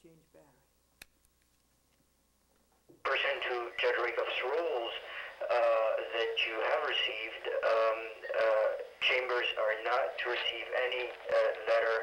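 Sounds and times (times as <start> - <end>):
person talking over telephone: 3.0 - 12.0.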